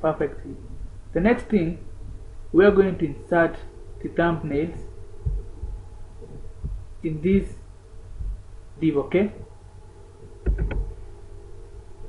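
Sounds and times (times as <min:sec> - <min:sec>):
low steady hum: 0:00.0 - 0:12.0
dull low thumps: 0:00.6 - 0:08.8, 0:09.4 - 0:11.4.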